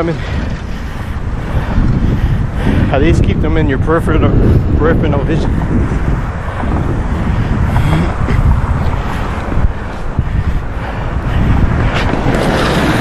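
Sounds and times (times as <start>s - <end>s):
skate wheels rolling on concrete: 0.0s - 13.0s
wind buffeting microphone: 0.0s - 13.0s.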